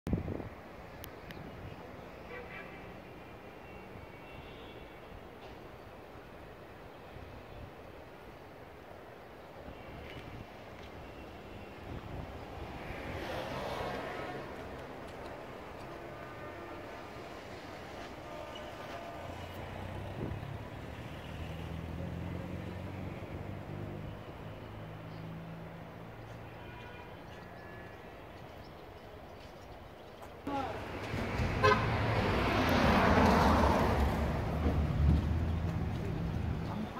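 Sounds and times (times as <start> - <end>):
hum of city traffic: 0.0 - 36.9
vehicle passing: 12.6 - 26.4, 30.5 - 36.9.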